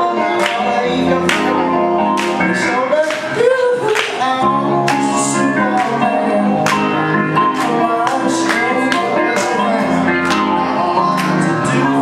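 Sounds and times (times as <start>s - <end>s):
electronic keyboard chords: 0.0s - 12.0s
man singing: 0.0s - 12.0s.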